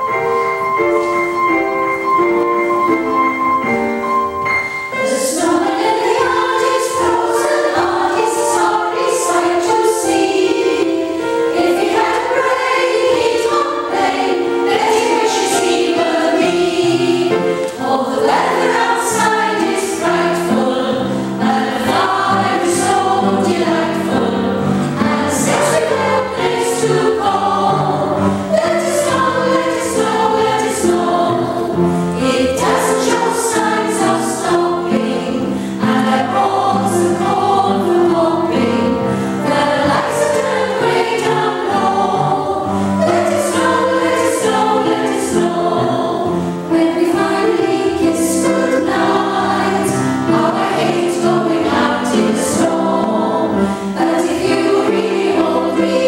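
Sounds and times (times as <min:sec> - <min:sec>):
upright piano accompaniment: 0:00.0 - 0:56.0
women's choir singing: 0:04.5 - 0:56.0.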